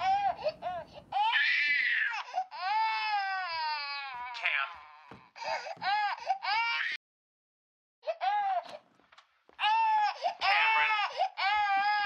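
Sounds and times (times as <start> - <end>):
baby crying: 0.0 - 7.0, 9.6 - 12.0.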